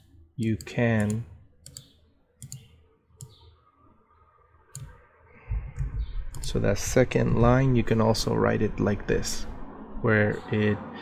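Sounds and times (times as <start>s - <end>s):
computer mouse clicking: 0.0s - 3.5s, 4.7s - 5.0s, 5.8s - 6.5s.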